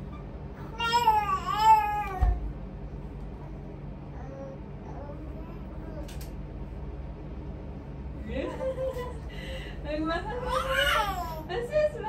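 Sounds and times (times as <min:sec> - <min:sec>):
low steady hum: 0:00.0 - 0:12.0
infant crying: 0:10.4 - 0:11.5.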